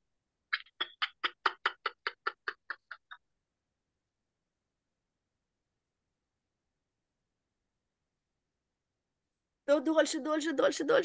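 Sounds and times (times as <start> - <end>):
whispered laughter: 0.5 - 3.3.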